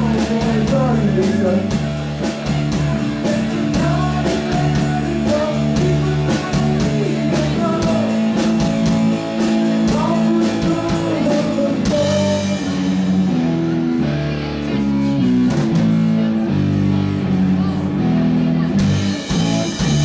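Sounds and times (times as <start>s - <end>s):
drum kit: 0.0s - 17.4s, 18.7s - 20.0s
bass guitar: 0.0s - 20.0s
electric guitar chords: 0.0s - 20.0s.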